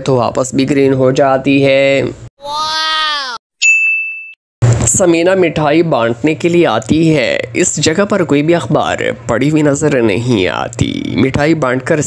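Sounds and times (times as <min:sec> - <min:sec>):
sharp high ding: 0:03.6 - 0:04.4.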